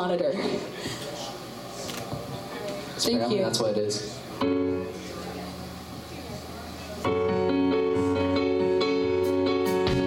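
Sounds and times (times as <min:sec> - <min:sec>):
digital piano chords: 0:04.3 - 0:06.1, 0:07.0 - 0:10.0.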